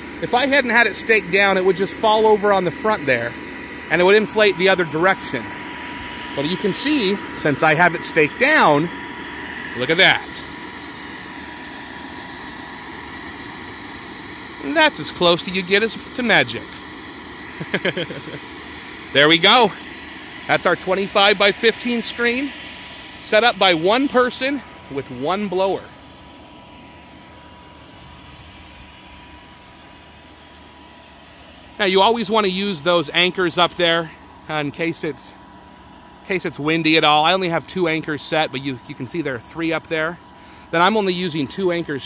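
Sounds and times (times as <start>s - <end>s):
electric blower whining: 0.0s - 42.0s.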